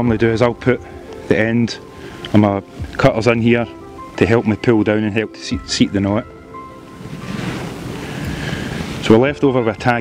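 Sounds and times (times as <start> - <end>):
wind: 0.0 - 10.0
waves on the shore: 6.5 - 10.0.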